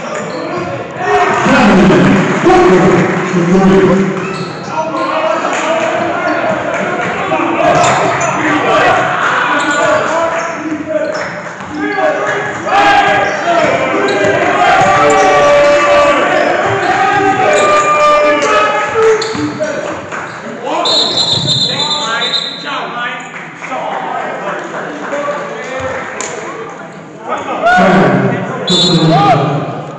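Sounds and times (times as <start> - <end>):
shouting and chatter: 0.0 - 29.9.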